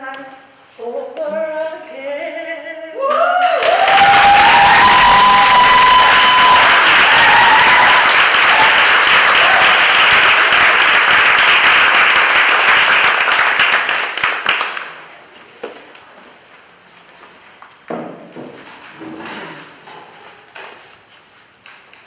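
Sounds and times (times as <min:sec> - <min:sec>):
audience applauding: 0:03.4 - 0:15.1.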